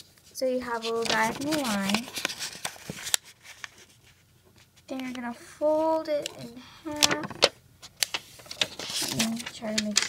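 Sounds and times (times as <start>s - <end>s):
paper crackle: 0.0s - 5.2s, 6.2s - 10.0s
paper crinkling: 0.0s - 5.2s, 6.2s - 10.0s.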